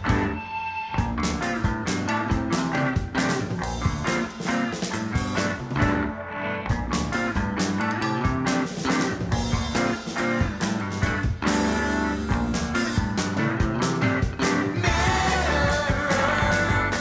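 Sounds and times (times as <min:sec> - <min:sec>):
bass guitar: 0:00.0 - 0:17.0
electric guitar: 0:00.0 - 0:17.0
steady drum beat: 0:01.0 - 0:06.1, 0:06.7 - 0:17.0.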